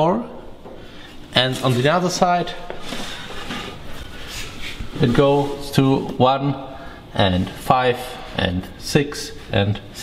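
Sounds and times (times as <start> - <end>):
metal part scraping on workbench: 2.8 - 3.9.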